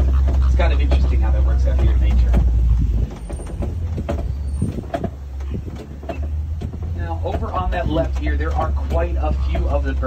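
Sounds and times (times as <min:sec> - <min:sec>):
truck engine rumbling: 0:00.0 - 0:10.0
vehicle body rattling: 0:00.0 - 0:10.0.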